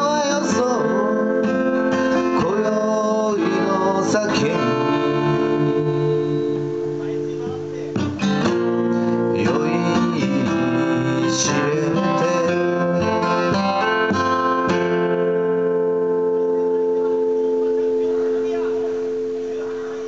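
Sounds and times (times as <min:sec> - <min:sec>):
acoustic guitar strummed: 0:00.0 - 0:20.0.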